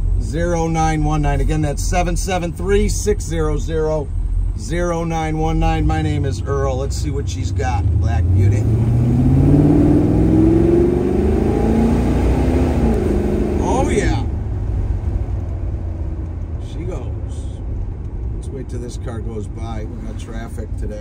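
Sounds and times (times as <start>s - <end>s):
car engine accelerating: 0.0s - 21.0s.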